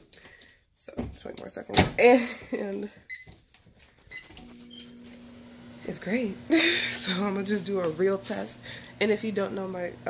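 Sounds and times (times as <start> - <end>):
microwave oven humming: 4.1 - 10.0.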